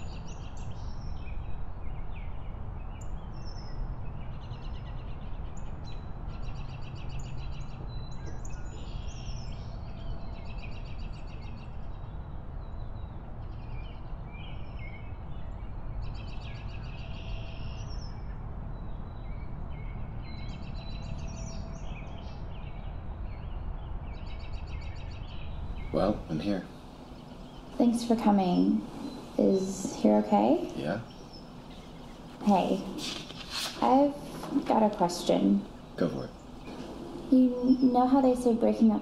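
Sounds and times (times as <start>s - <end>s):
songbirds singing rapid trills: 0.0s - 39.0s
steady low rumble: 0.0s - 39.0s.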